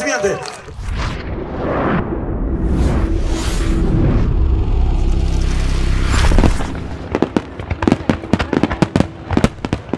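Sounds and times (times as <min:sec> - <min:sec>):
fireworks popping and cracking: 0:06.4 - 0:09.9.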